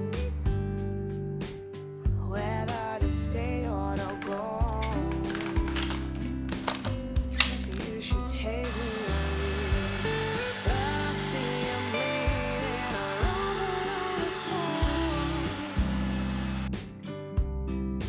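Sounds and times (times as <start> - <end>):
background song: 2.2 - 16.9
stick vacuum cleaner running: 8.6 - 16.8.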